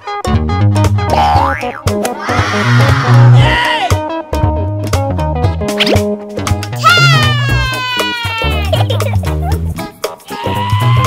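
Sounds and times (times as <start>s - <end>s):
background music: 0.0s - 11.0s
cartoon boing sound effect: 1.1s - 2.0s.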